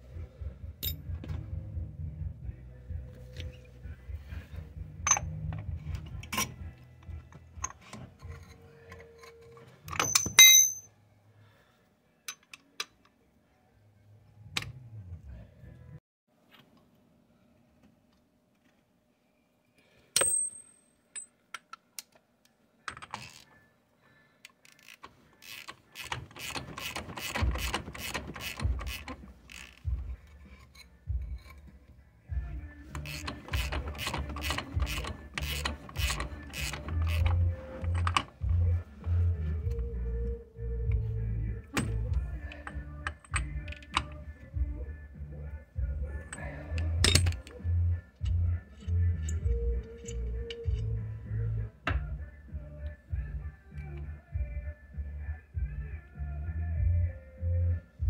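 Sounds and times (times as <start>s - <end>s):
socket ratchet clicking: 24.6s - 30.0s, 32.9s - 38.4s, 41.8s - 44.2s.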